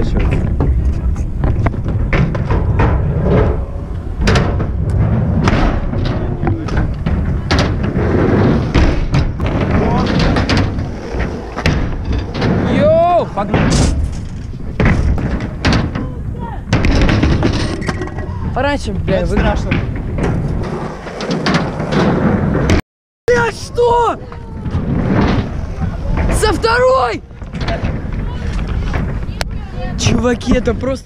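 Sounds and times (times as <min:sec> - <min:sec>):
scooter rolling on concrete: 0:24.2 - 0:31.0.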